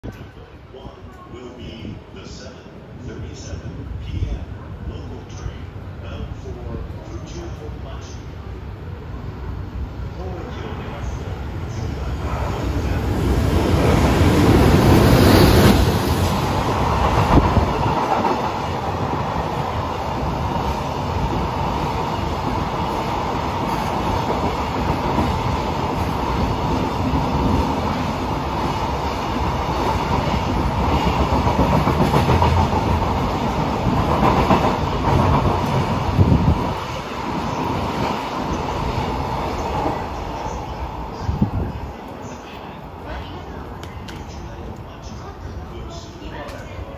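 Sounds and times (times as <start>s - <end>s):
electric locomotive passing: 0.1s - 46.9s.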